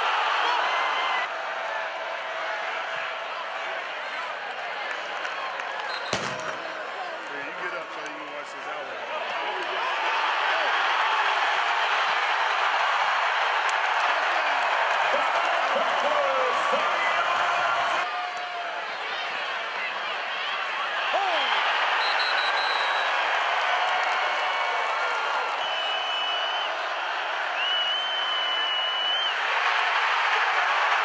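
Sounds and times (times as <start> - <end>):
stadium crowd cheering: 0.0 - 31.0
crowd clapping: 2.7 - 18.5, 21.0 - 31.0
long high whistle tones: 22.0 - 23.1, 27.6 - 29.4.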